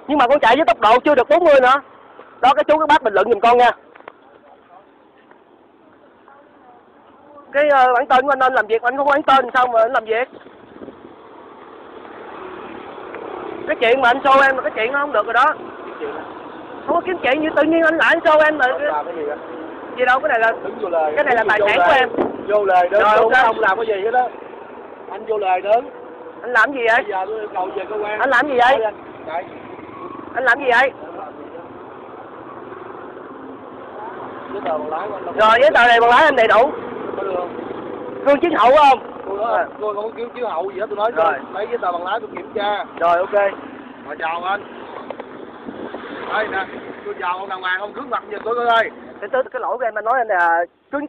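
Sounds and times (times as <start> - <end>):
vehicle road noise passing: 0.0 - 51.0.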